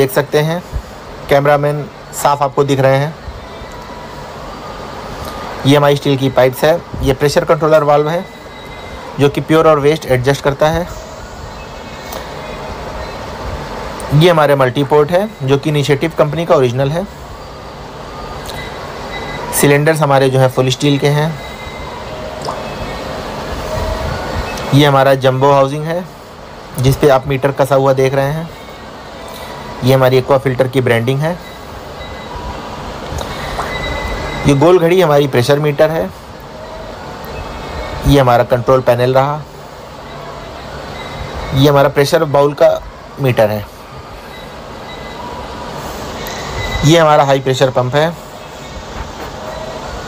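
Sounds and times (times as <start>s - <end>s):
man speaking: 0.0s - 3.2s, 5.6s - 8.3s, 9.2s - 11.0s, 14.0s - 17.2s, 19.5s - 21.5s, 24.6s - 26.2s, 26.8s - 28.6s, 29.8s - 31.5s, 34.4s - 36.2s, 38.0s - 39.5s, 41.5s - 43.8s, 46.8s - 48.3s
mechanical hum with high whine: 0.0s - 50.0s.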